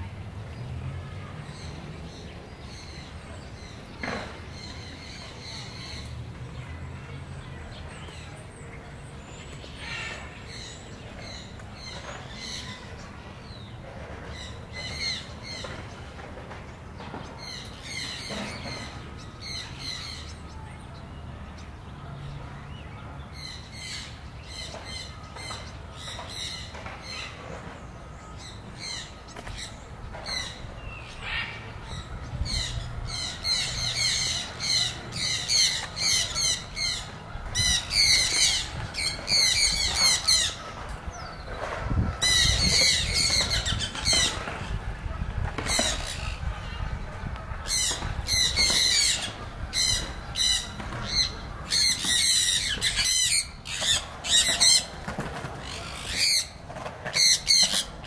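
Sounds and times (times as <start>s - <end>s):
birds squawking: 28.4s - 58.0s.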